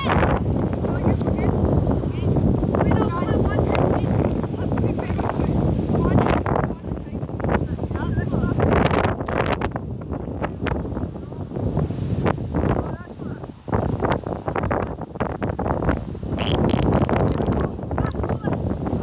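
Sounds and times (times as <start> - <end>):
wind blowing across microphone: 0.0 - 19.0.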